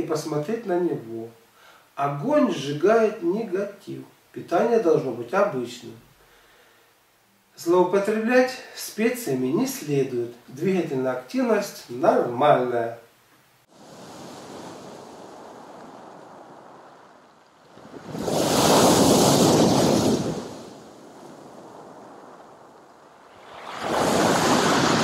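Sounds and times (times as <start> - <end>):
surf washing on pebble shore: 13.7 - 25.0
waves crashing: 13.7 - 25.0.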